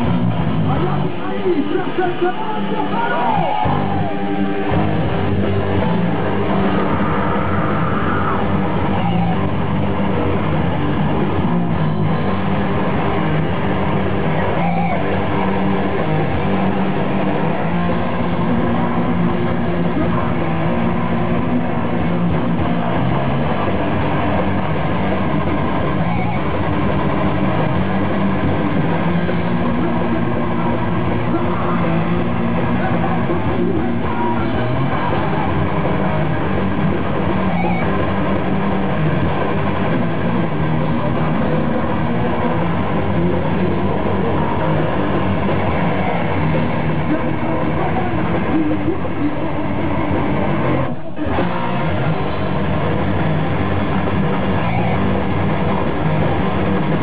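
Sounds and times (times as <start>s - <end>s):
heavy metal band playing live: 0.0s - 57.0s.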